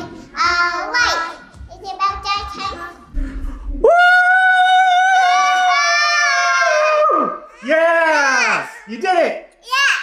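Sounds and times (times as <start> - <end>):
low rumble: 3.1 - 4.1.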